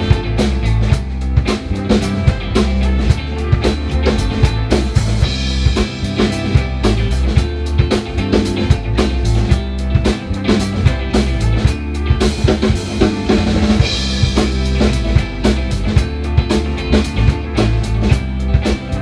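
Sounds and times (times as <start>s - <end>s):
drum kit beat: 0.0s - 19.0s
rock band playing: 0.0s - 19.0s.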